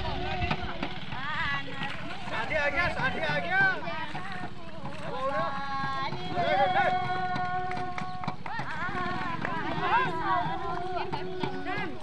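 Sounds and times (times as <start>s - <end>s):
woman singing a folk song: 0.0s - 2.5s, 3.7s - 12.0s
quick steady drum beats: 0.0s - 12.0s.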